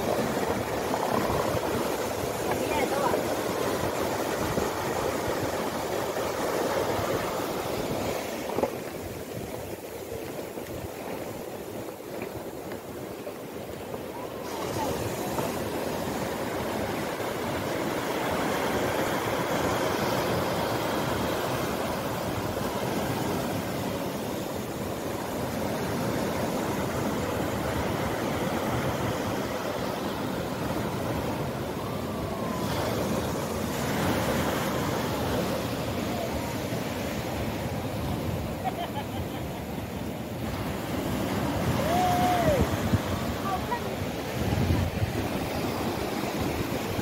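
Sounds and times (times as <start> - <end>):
surf washing over sand: 0.0 - 47.0.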